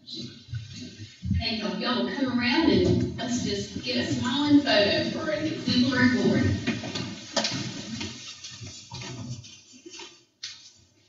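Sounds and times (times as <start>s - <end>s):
footsteps: 2.6s - 10.8s
chairs shifting: 5.4s - 10.2s
clothing rustle: 5.4s - 11.0s.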